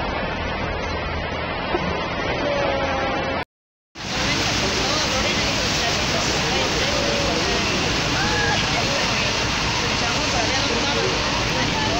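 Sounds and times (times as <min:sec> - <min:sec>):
vehicles driving through water: 0:00.0 - 0:03.4, 0:04.0 - 0:11.9
water rushing in street: 0:00.0 - 0:03.4, 0:04.0 - 0:11.9
faint voices: 0:04.0 - 0:11.9.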